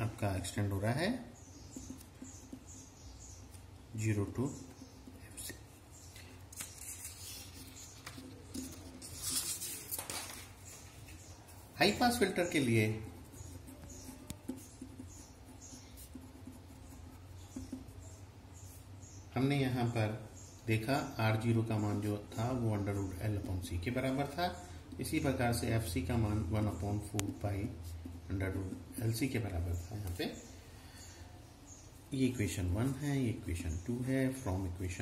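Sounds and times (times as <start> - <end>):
pen scratching on paper: 10.7 - 18.8.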